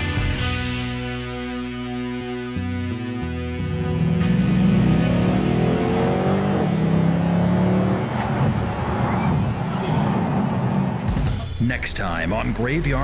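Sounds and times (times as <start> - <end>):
car engine accelerating: 3.0 - 11.5.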